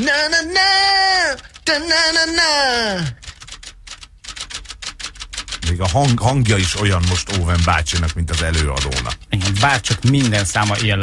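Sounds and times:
rapid light clicks: 3.1 - 11.0.

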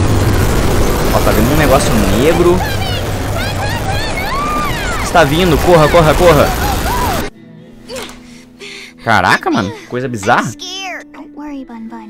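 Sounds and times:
loud noise: 0.0 - 7.3
quiet background music: 7.3 - 12.0
person gasping: 8.1 - 9.0.

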